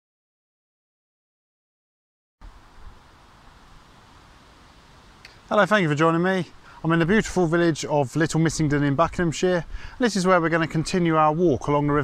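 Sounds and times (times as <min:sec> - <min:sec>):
even hiss: 0:02.4 - 0:11.8.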